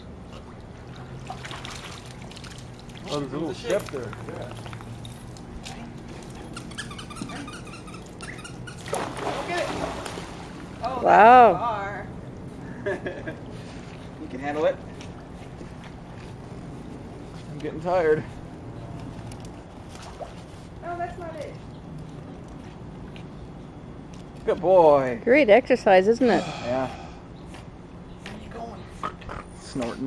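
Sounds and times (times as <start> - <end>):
water sloshing and splashing: 0.0 - 6.6, 8.1 - 11.1, 18.7 - 20.9
dog whining in high yips: 6.5 - 8.9.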